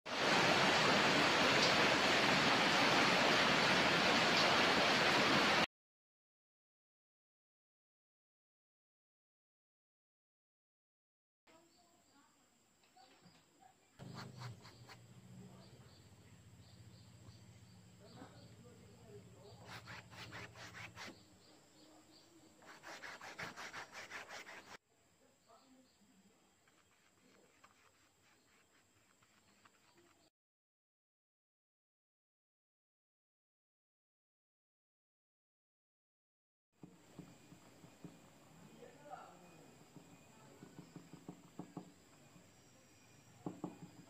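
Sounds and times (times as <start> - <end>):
paintbrush scrubbing strokes: 14.0 - 15.0, 19.4 - 21.3, 22.6 - 24.8, 26.6 - 30.3.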